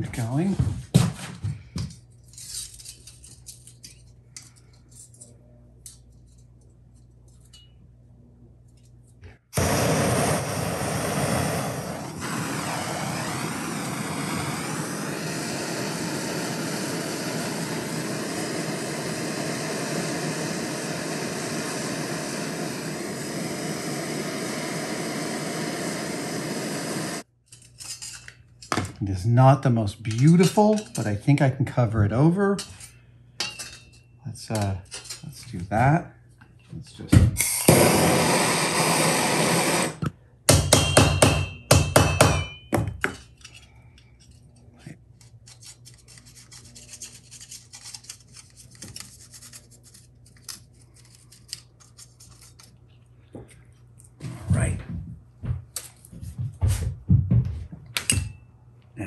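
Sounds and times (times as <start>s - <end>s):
gas torch hissing: 9.4s - 27.3s, 37.3s - 40.2s.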